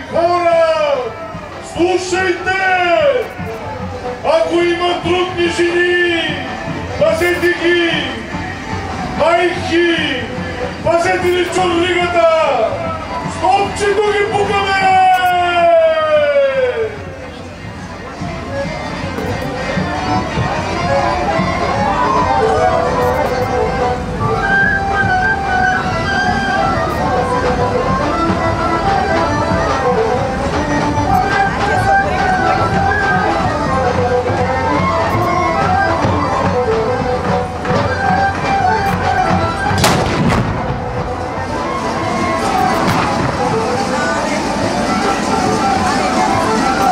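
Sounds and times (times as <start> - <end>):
music: 0.0 - 46.9
cannon blast with echo: 39.8 - 41.0.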